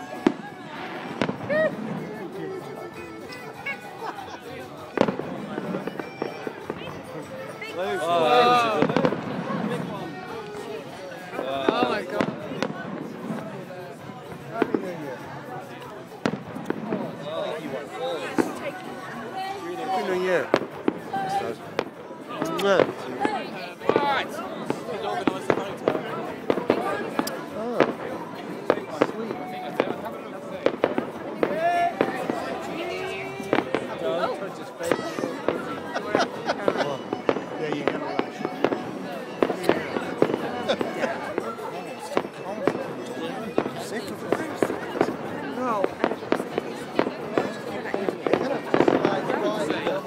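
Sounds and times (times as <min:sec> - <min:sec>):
fireworks bangs: 0:00.0 - 0:03.3, 0:04.8 - 0:07.6, 0:08.6 - 0:10.7, 0:11.3 - 0:15.3, 0:16.0 - 0:18.8, 0:20.1 - 0:50.0.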